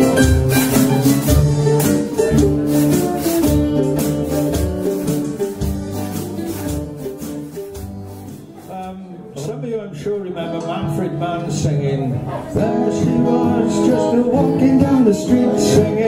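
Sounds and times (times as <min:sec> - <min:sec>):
washboard scraped in a beat: 0:00.0 - 0:08.8
acoustic guitar strumming: 0:00.0 - 0:16.0
low bass notes: 0:00.0 - 0:16.0
mandolin strumming: 0:00.0 - 0:16.0.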